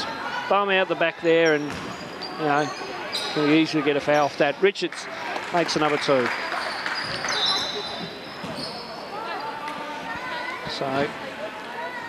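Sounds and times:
shoes squeaking on court: 1.4s - 4.5s, 6.3s - 10.7s.

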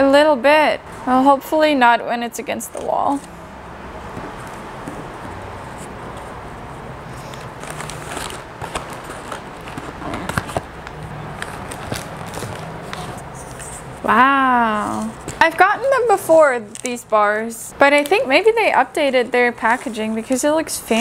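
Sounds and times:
cardboard box crinkling: 7.2s - 13.9s.

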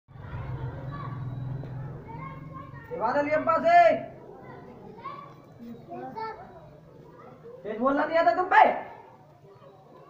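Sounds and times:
faint children's voices: 0.1s - 8.1s, 8.8s - 10.0s.

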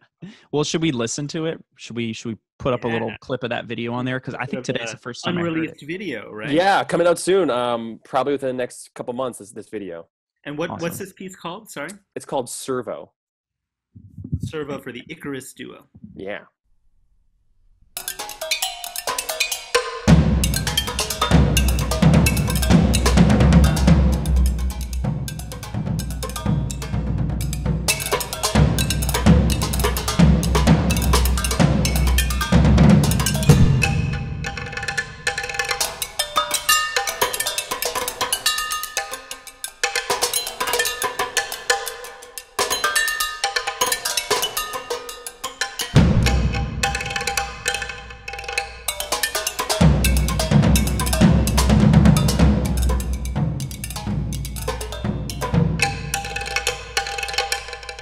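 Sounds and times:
deep low rumble: 14.0s - 14.6s
fast percussion stick strokes: 18.0s - 58.0s.

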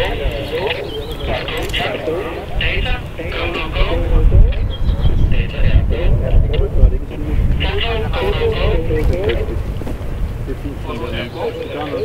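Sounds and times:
men talking: 0.0s - 12.0s
wind rumbling on microphone: 0.0s - 12.0s.

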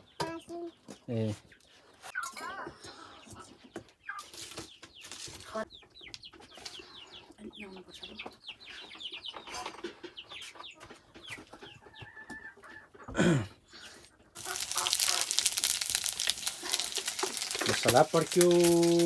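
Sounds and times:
chickens clucking: 0.0s - 19.0s.

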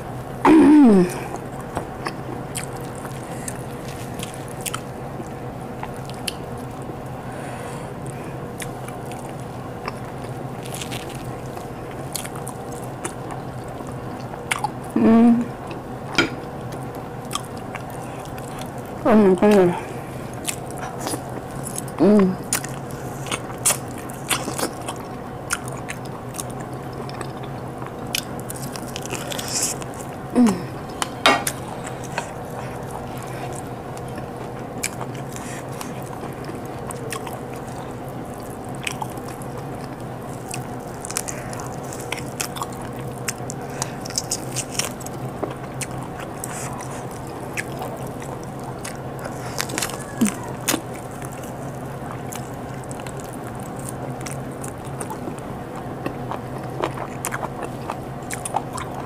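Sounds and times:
faint steady hum: 0.0s - 59.0s
person chewing food: 0.2s - 14.9s, 15.6s - 59.0s
person humming mm: 0.5s - 1.4s, 14.9s - 15.6s, 19.1s - 20.0s, 22.0s - 22.5s, 30.3s - 32.8s, 49.8s - 50.8s.

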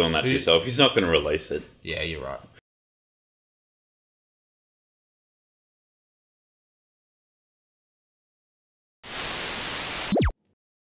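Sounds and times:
falling electrical zap: 9.1s - 10.3s
static hiss: 9.1s - 10.3s.

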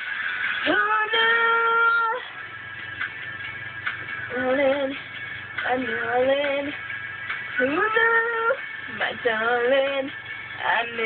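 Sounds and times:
quiet backing music: 0.0s - 11.0s.

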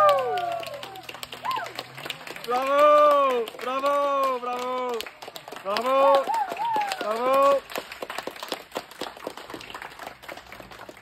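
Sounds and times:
audience applause: 0.0s - 11.0s.

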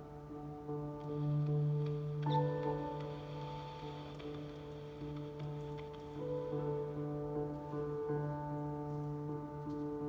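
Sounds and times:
piano: 0.0s - 10.0s.

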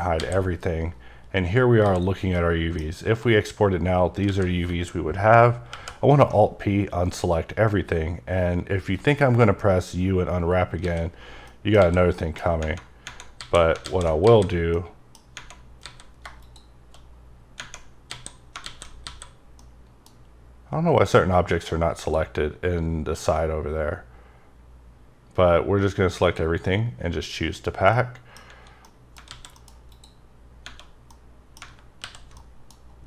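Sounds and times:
mouse buttons clicking: 0.0s - 0.6s, 1.8s - 2.9s
keyboard and mouse clicks: 0.0s - 0.7s, 1.8s - 3.0s, 4.1s - 4.9s, 5.7s - 6.4s, 10.7s - 20.3s, 28.4s - 33.0s
faint low hum: 0.0s - 33.0s.

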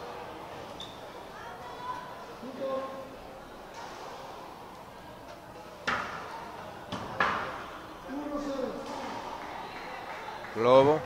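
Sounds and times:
faint voices: 0.0s - 11.0s
racquetball hitting court walls: 5.8s - 7.7s.

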